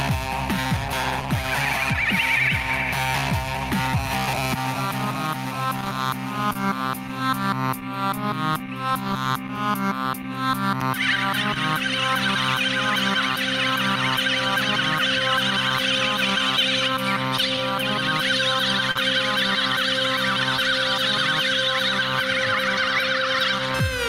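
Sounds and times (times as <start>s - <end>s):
looped beatbox dance music: 0.0s - 24.0s.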